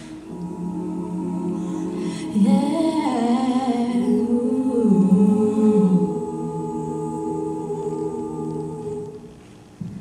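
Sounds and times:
a cappella group humming chords: 0.0 - 9.5
woman singing: 2.3 - 9.2.

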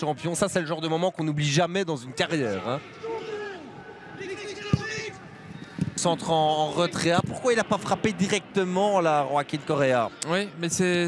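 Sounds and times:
football being kicked: 4.7 - 5.1.

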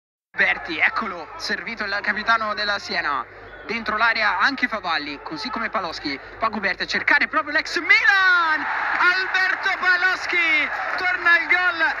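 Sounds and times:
man commentating excitedly: 0.4 - 12.0.

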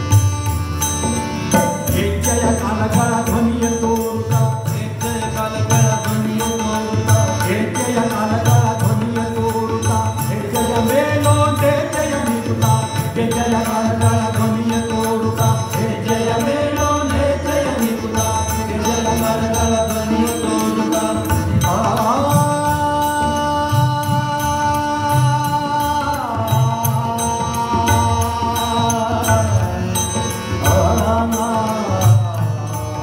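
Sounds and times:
harmonium: 0.0 - 33.0
tanpura drone: 0.0 - 33.0
man singing: 1.5 - 33.0.

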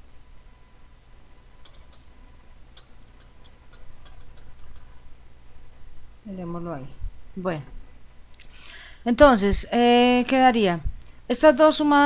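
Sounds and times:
computer keyboard keystrokes: 1.6 - 2.1, 2.8 - 4.9.

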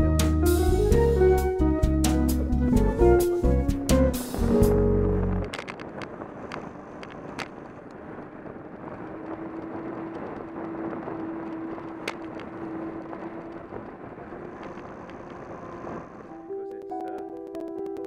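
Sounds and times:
piano music: 0.0 - 5.6, 16.2 - 18.0
wind and road noise: 0.0 - 18.0.

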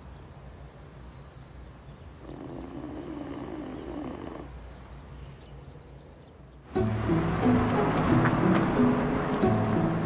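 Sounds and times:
dog snoring: 2.2 - 4.6.

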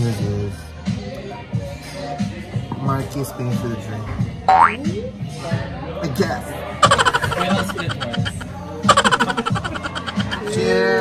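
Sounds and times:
man laughing: 6.8 - 10.8
background music: 6.8 - 11.0.

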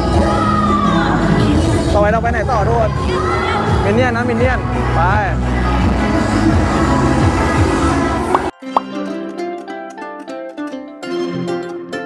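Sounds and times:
street and crowd ambience: 0.0 - 8.6
plucked-string music: 8.4 - 12.0.

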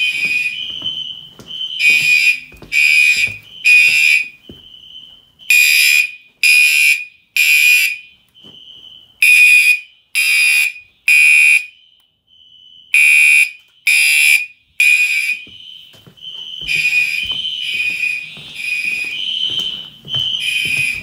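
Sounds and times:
faint steady alarm tone: 0.0 - 21.0
fire alarm horn blasts: 0.0 - 21.0.

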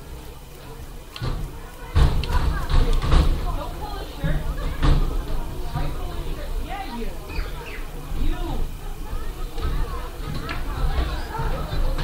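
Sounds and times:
people talking: 0.0 - 12.0
thumps and rumble on microphone: 1.2 - 6.7.

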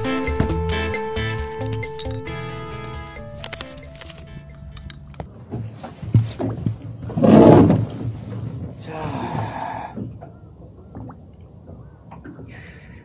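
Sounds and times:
background music: 0.0 - 5.3
camera handling noise: 0.7 - 5.3.

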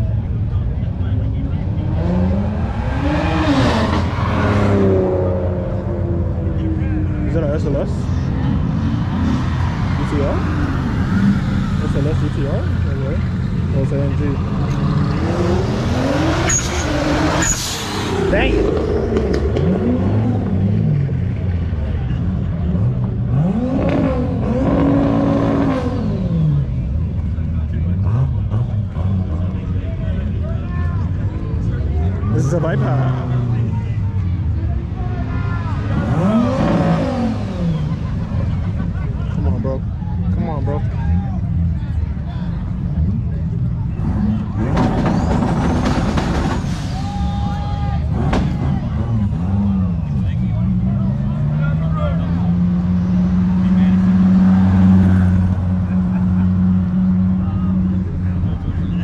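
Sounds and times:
crowd voices: 0.0 - 59.0
cars accelerating past: 1.0 - 59.0.

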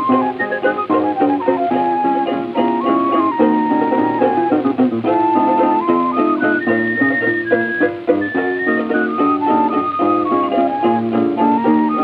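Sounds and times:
high held-note melody: 0.0 - 12.0
plucked strings playing chords: 0.0 - 12.0.

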